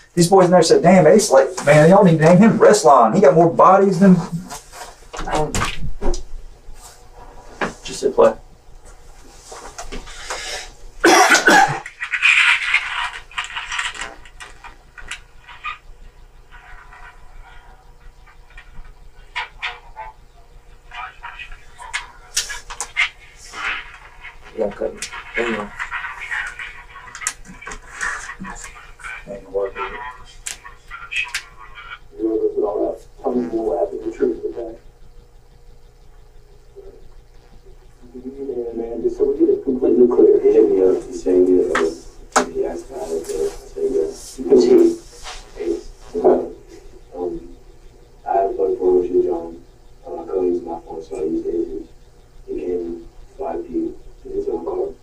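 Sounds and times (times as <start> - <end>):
muffled speech through small speaker: 0.0 - 5.9, 7.6 - 8.5, 16.5 - 55.0.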